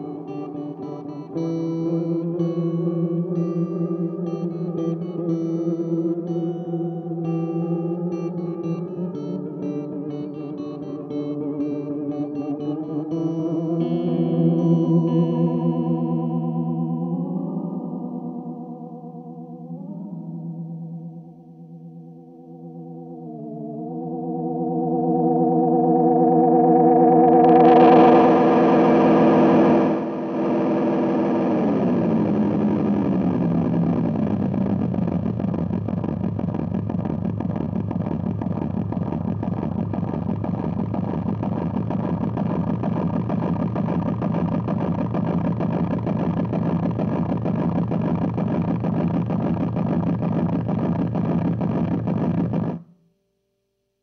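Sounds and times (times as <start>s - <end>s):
delay pedal feedback drone: 0.0s - 53.0s.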